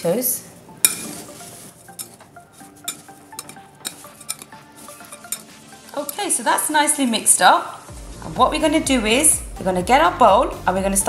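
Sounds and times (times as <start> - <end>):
metal spoon stirring in glass bowl: 0.9 - 6.3
spoon clinking against glass: 2.8 - 6.2.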